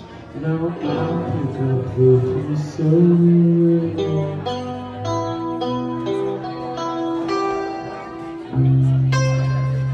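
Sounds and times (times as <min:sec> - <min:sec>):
electric guitars playing: 0:00.0 - 0:09.9.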